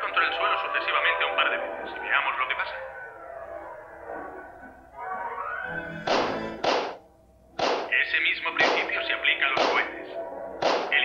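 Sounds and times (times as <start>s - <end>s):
cartoon rifle shots: 7.6s - 7.9s, 8.6s - 8.9s, 9.6s - 9.9s, 10.6s - 11.0s.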